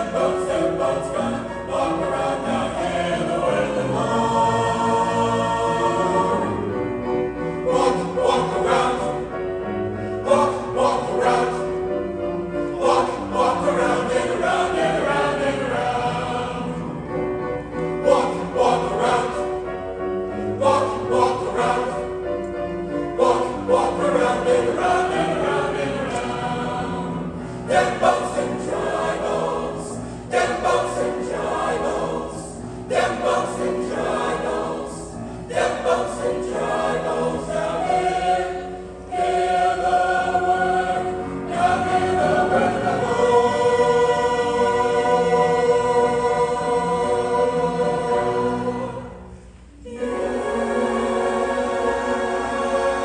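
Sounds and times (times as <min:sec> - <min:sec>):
mixed choir singing: 0:00.0 - 0:53.0.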